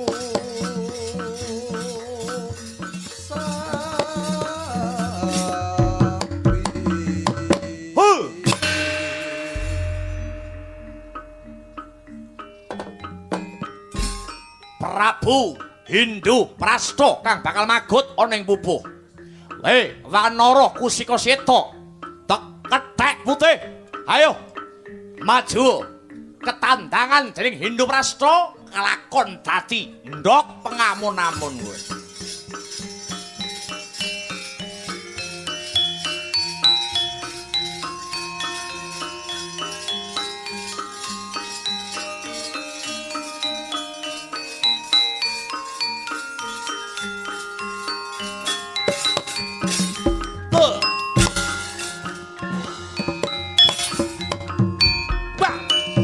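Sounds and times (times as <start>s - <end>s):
hand drum: 0.0s - 14.5s, 31.0s - 56.0s
gamelan music: 0.0s - 56.0s
struck gamelan note ringing: 8.4s - 14.6s.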